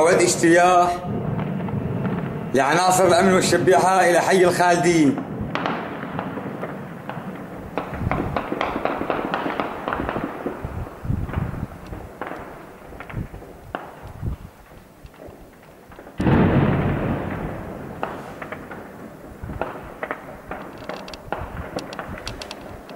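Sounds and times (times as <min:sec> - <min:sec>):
heavy explosion echoing: 0:00.0 - 0:14.6, 0:15.6 - 0:22.2
gunfire cracks and pops: 0:05.6 - 0:10.7, 0:11.3 - 0:18.9, 0:19.5 - 0:22.9.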